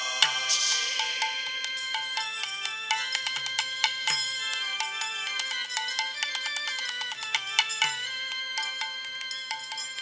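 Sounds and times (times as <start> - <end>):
hand cymbals ringing: 0.0 - 10.0.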